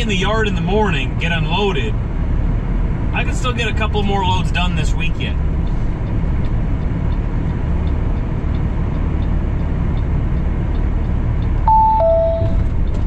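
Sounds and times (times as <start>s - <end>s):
diesel truck engine drone: 0.0s - 13.0s
two-note electronic chime: 11.7s - 12.6s.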